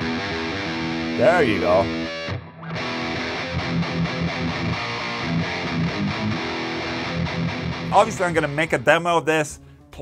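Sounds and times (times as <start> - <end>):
distorted electric guitar riffing: 0.0 - 9.1.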